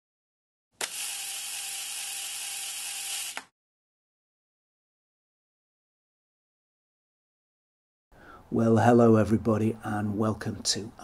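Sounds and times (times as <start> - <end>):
sharp mechanical click: 0.8 - 1.6, 3.0 - 3.5
hissy mechanical whirr: 0.8 - 3.5.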